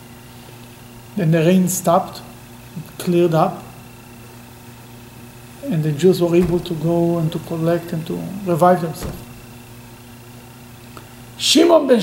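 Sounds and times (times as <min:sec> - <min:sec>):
steady hiss: 0:00.0 - 0:11.4
faint electrical hum: 0:00.0 - 0:12.0.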